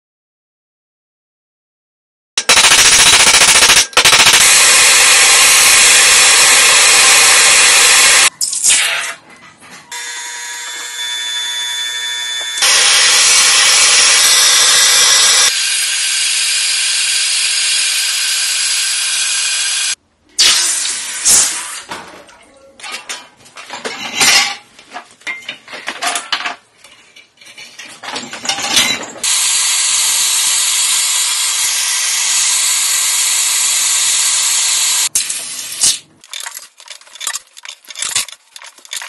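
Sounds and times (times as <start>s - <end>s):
machine rapid mechanical clatter: 2.4s - 5.2s, 36.2s - 39.0s.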